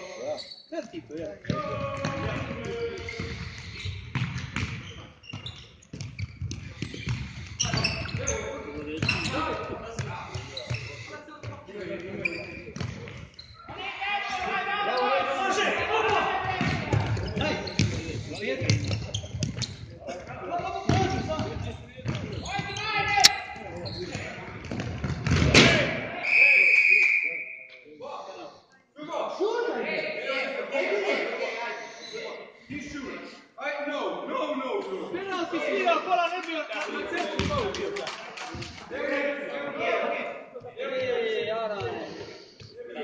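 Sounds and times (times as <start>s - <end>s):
ball kicked and bouncing on floor: 4.1s - 7.2s.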